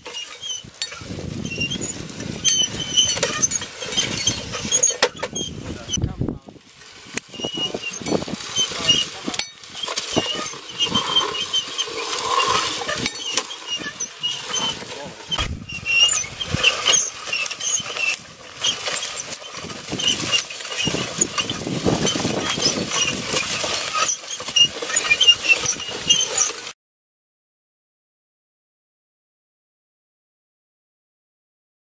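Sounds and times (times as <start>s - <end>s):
seeder rattling and clicking: 7.1s - 26.7s.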